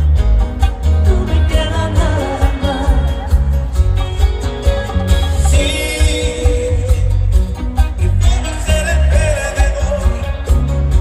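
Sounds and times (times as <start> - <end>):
band playing pop ballad: 0.0 - 11.0
deep steady bass: 0.0 - 11.0
man singing: 1.0 - 3.5, 5.4 - 11.0.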